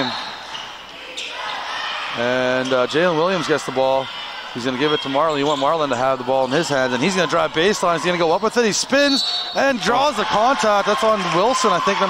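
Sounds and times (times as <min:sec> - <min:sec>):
gymnasium crowd noise: 0:00.0 - 0:12.0.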